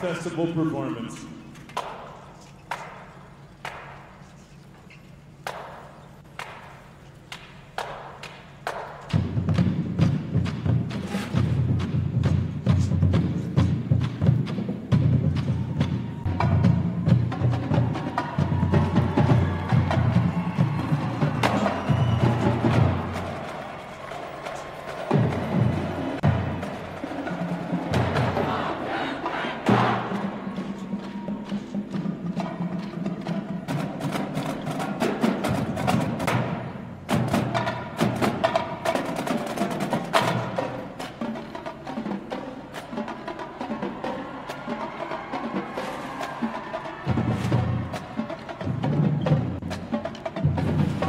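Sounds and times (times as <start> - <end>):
marching drumline beat: 5.4 - 51.0.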